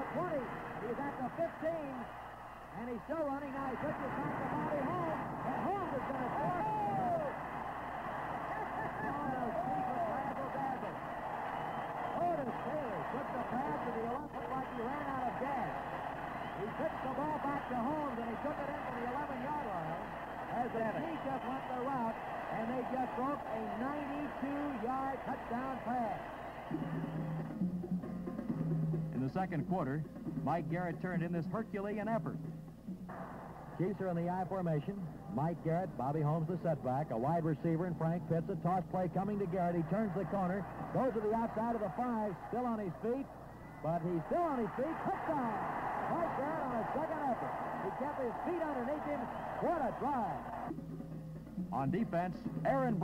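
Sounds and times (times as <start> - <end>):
stadium crowd cheering: 0.0 - 27.6, 33.1 - 50.8.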